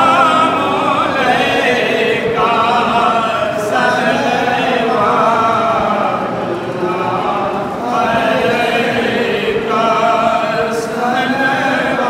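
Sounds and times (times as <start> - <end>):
men chanting in unison: 0.0 - 12.0.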